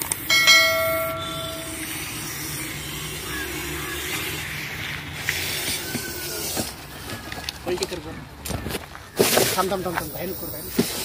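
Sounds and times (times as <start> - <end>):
brief ringing tone: 0.3 - 2.0
snake hissing: 1.5 - 6.7.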